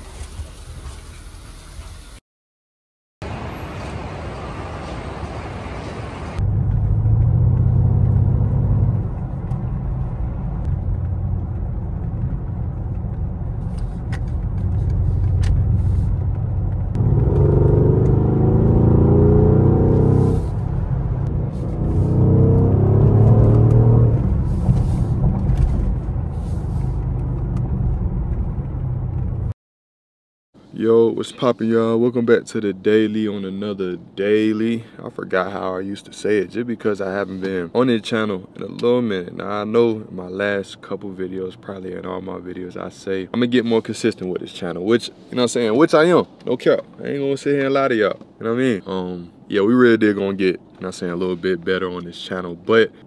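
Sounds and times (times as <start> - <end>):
engine and road rumble in cabin: 3.2 - 29.6.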